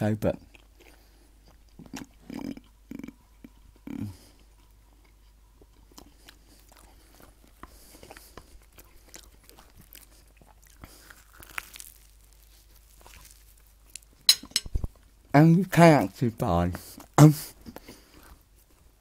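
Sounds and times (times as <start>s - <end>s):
man chewing crunchy sandwich: 0.4s - 14.3s, 16.8s - 19.0s.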